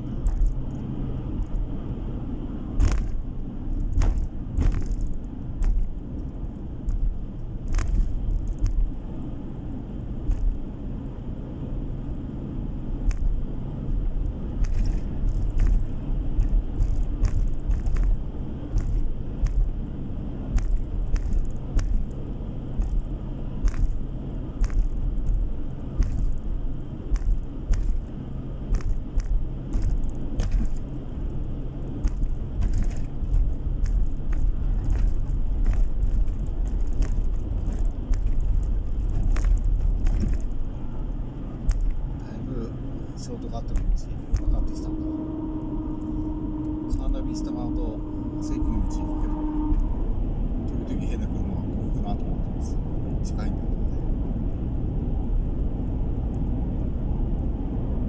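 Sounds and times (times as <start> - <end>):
car engine and tyres rumbling: 0.0 - 58.0.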